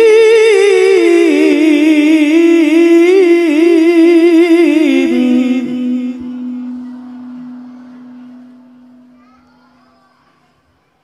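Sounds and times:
held recitation note echoing: 0:00.0 - 0:11.0.

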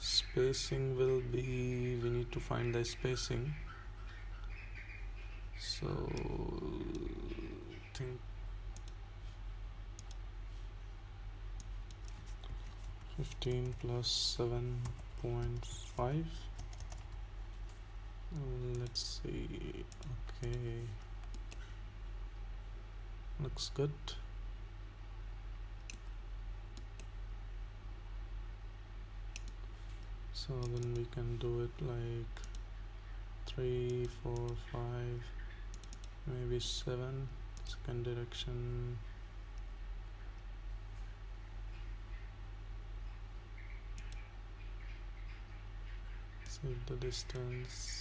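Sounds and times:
low electrical hum: 0:00.0 - 0:48.0
keyboard and mouse clicking: 0:10.0 - 0:10.2, 0:11.6 - 0:13.9, 0:16.6 - 0:17.2, 0:18.7 - 0:19.0, 0:29.4 - 0:29.6, 0:30.6 - 0:31.1, 0:32.4 - 0:32.6, 0:35.7 - 0:36.2, 0:44.0 - 0:44.2.

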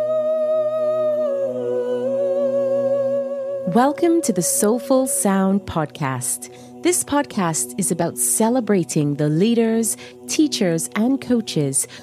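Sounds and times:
person humming: 0:00.0 - 0:05.2.

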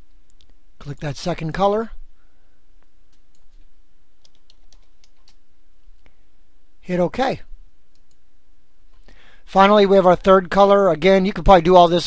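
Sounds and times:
computer keyboard typing: 0:04.2 - 0:05.4.

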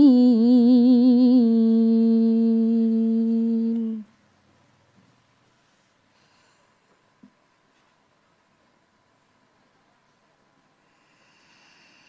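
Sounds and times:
woman reciting melodically: 0:00.0 - 0:04.1.

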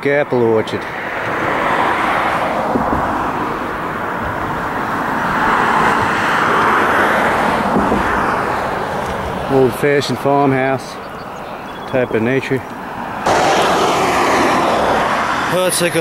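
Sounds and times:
road traffic passing: 0:00.0 - 0:16.0.

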